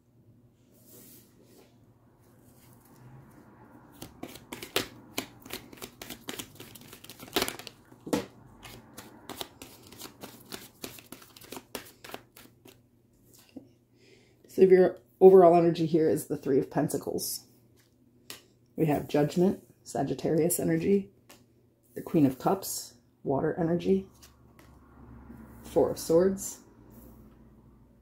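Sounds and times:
cards being shuffled: 4.0 - 12.8.

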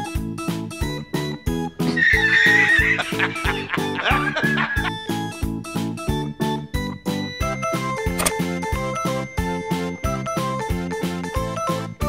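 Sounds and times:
horse whinny: 1.9 - 5.0.

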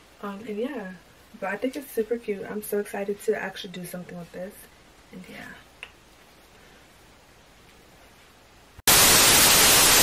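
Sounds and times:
loud hissing static: 0.0 - 10.0.

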